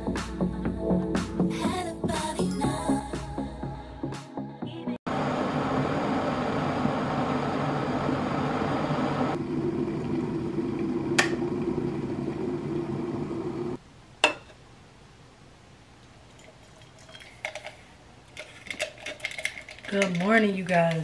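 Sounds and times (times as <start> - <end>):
background music: 0.0 - 5.0
electric kettle boiling: 5.1 - 13.8
kettle switch click: 11.2 - 11.4.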